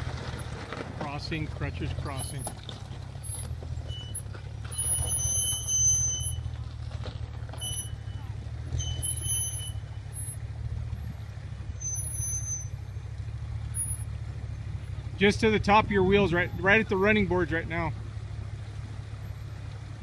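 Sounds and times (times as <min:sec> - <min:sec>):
suv engine rumbling: 0:00.0 - 0:20.0
high thin whistling tones: 0:03.8 - 0:06.5, 0:07.1 - 0:10.0, 0:11.7 - 0:12.8.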